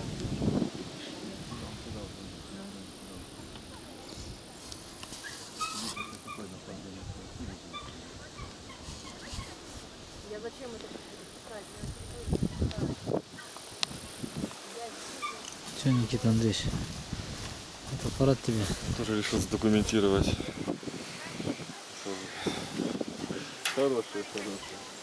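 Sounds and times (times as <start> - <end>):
wind rumble on microphone: 0.0 - 4.9, 11.6 - 14.6, 15.8 - 23.6
faint voices: 0.0 - 25.0.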